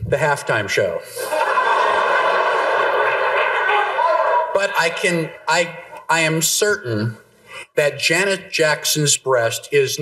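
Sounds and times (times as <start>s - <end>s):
audience laughing: 1.1s - 5.4s
audience applauding: 1.5s - 5.4s.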